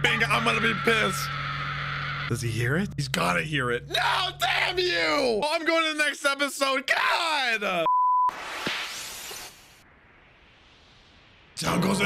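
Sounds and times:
censor bleep: 7.9 - 8.4
whoosh of noise: 8.3 - 11.8.

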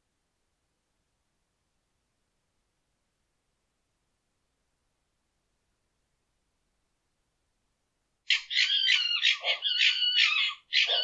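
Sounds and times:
harsh high-pitched animal calls: 8.3 - 11.0.

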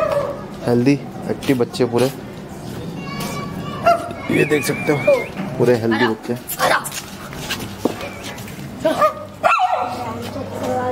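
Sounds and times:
puppy yipping: 3.8 - 5.4, 9.0 - 10.0.

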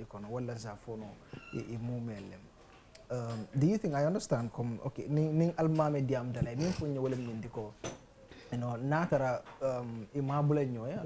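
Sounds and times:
man speaking: 0.0 - 7.9, 8.5 - 11.0.

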